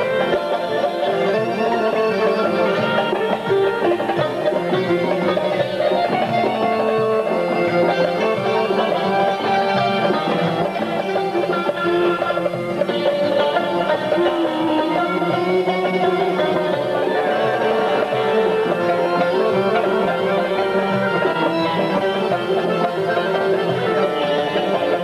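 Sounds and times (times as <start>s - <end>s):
accordion accompaniment: 0.0s - 25.0s
plucked lute melody: 0.0s - 25.0s.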